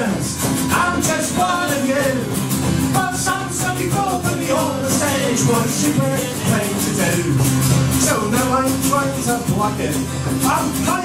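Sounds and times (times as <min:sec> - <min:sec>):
acoustic guitar strumming: 0:00.0 - 0:11.0
folk-punk band playing: 0:00.0 - 0:11.0.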